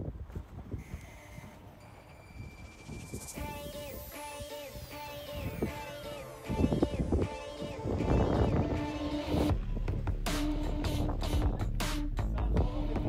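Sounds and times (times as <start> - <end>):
background music with beat: 2.8 - 13.0
low rumble: 6.4 - 13.0.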